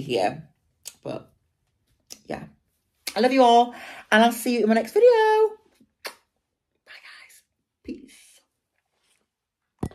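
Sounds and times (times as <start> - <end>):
blown kiss lip-smack: 6.0 - 6.3
soft breathy whispering: 6.8 - 8.6.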